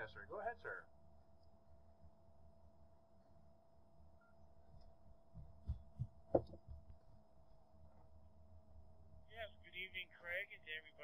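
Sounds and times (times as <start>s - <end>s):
faint steady hum: 0.0s - 11.0s
microphone handling thumps: 5.3s - 7.0s.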